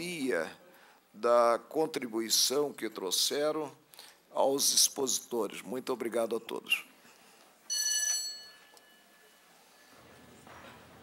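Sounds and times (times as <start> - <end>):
bell ringing: 7.7 - 9.5.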